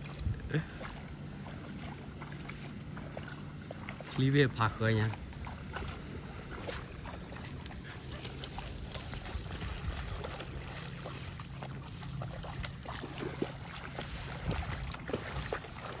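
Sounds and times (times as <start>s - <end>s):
feet splashing in shallow water: 0.0s - 16.0s
steady low hum: 0.0s - 16.0s.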